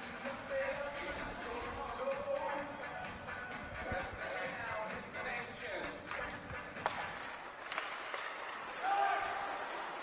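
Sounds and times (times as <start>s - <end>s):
faint music over arena speakers: 0.0s - 7.6s
stick clacking puck: 6.1s - 8.8s.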